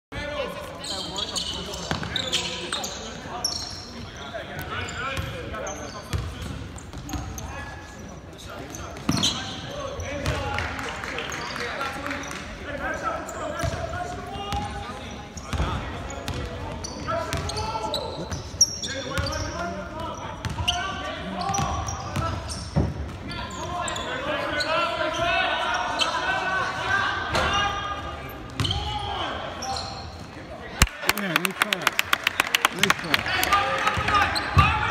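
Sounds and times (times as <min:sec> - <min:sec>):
voices calling out and chattering: 0:00.1 - 0:34.9
sneakers squeaking: 0:00.6 - 0:10.5, 0:14.5 - 0:26.6, 0:28.3 - 0:30.6, 0:33.9 - 0:34.9.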